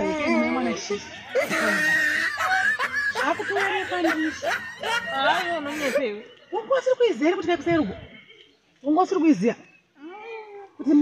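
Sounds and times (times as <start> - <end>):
woman laughing: 1.3 - 6.2
woman talking animatedly: 3.1 - 8.0.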